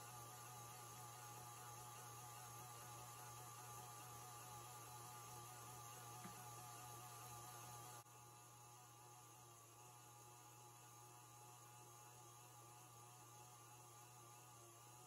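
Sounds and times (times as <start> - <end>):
stand mixer motor humming: 0.0 - 15.0.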